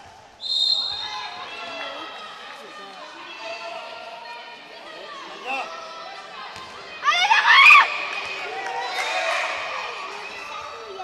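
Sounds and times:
voices of players and spectators: 0.0s - 11.0s
referee's whistle blast: 0.4s - 1.1s.

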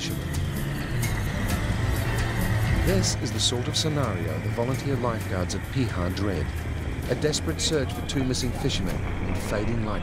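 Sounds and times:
background music: 0.0s - 10.0s
outboard motor running: 0.0s - 10.0s.

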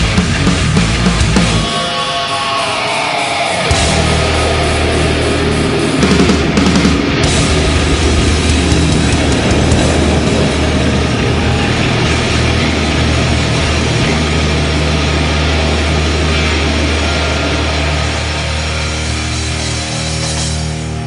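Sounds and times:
heavy metal chord ringing: 0.0s - 21.0s.

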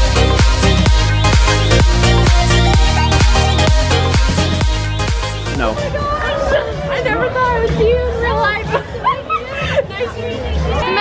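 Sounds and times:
low music bass line: 0.0s - 6.0s
women chattering excitedly: 5.7s - 11.0s.

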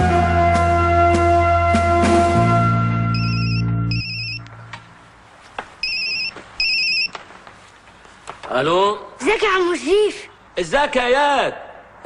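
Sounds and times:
background music: 0.0s - 4.7s
telephone ringing with electronic trill: 3.2s - 4.4s, 5.8s - 7.1s.

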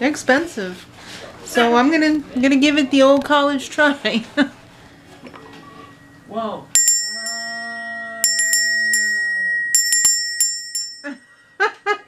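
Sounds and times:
handbell ringing: 6.8s - 11.5s.

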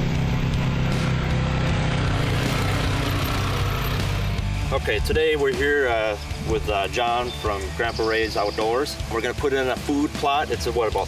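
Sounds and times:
tractor engine running: 0.0s - 6.6s.

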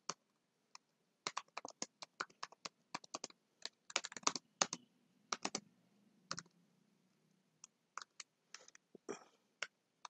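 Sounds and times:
computer keyboard typing: 1.2s - 5.6s, 6.3s - 6.5s, 8.0s - 8.8s.

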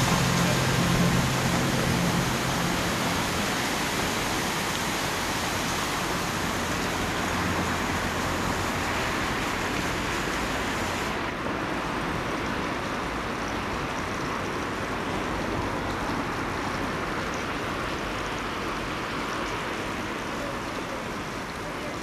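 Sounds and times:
steady rushing noise: 0.0s - 13.3s.

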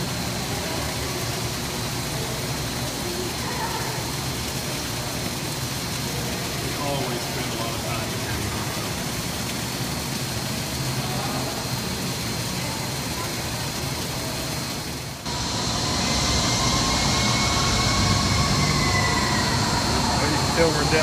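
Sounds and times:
ventilation rushing noise: 0.0s - 21.0s.

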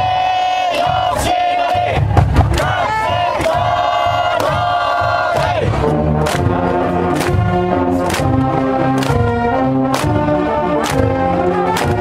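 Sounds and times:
crowd chanting in unison: 0.0s - 8.4s
drum beats: 0.0s - 12.0s
brass band playing: 2.5s - 12.0s.

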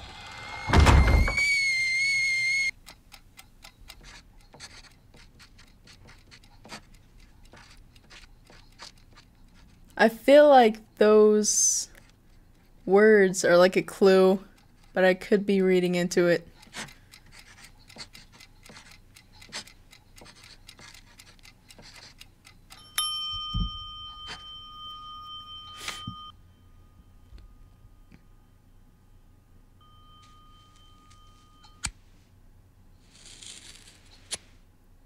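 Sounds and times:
pencil scratching on newspaper: 4.0s - 10.0s, 16.6s - 22.2s
steady bell-like ringing tone: 22.8s - 31.9s.

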